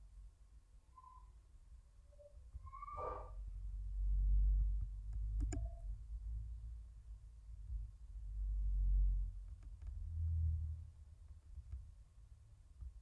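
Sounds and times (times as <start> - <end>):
low background rumble: 0.0 - 13.0
computer mouse clicks: 5.1 - 5.8.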